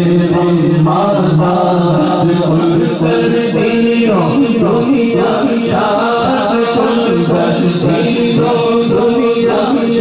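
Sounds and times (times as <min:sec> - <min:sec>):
man singing into a microphone: 0:00.0 - 0:10.0.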